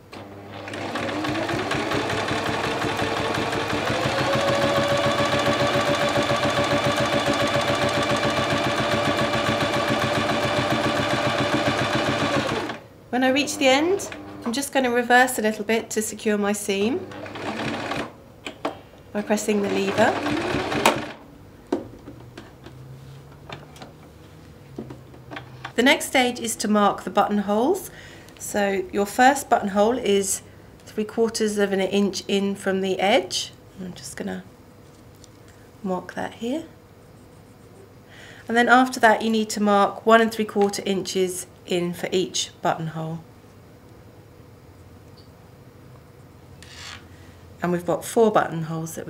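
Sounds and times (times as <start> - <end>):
sewing machine stitching: 0.1 - 12.8, 17.1 - 18.1, 19.3 - 21.2.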